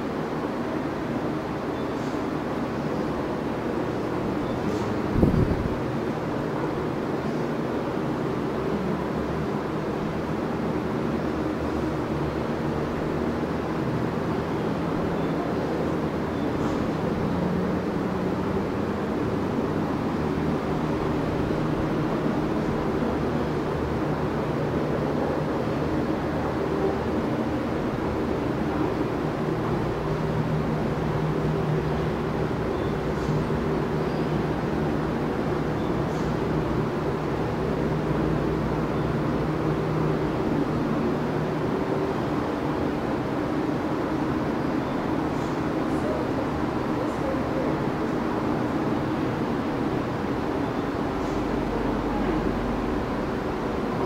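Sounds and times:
box fan running: 0.0 - 54.0.

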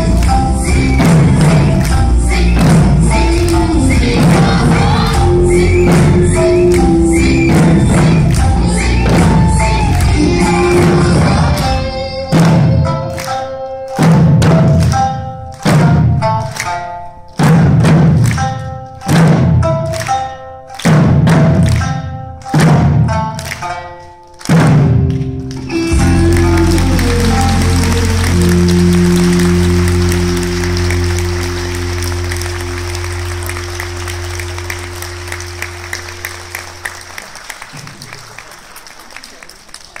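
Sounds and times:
backing music: 0.0 - 38.6
audience applauding: 3.3 - 11.9, 24.3 - 40.0
taiko drum hits: 17.4 - 18.4, 19.1 - 20.0, 20.8 - 21.9, 22.5 - 23.3.

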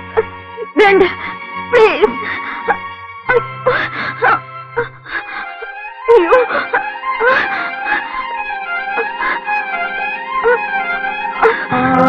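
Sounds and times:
film music with held low note: 0.0 - 12.0
woman moaning: 11.4 - 12.0.

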